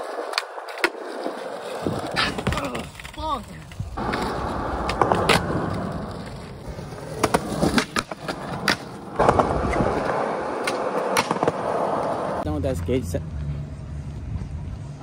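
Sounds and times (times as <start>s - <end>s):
skateboard wooden clacks: 0.0s - 6.5s, 7.1s - 12.4s
skateboard wheels rolling on concrete: 0.0s - 15.0s.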